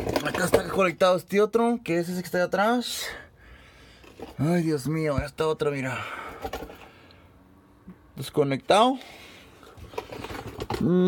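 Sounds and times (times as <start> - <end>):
plastic connector handling noise: 0.0 - 0.9, 9.6 - 10.9.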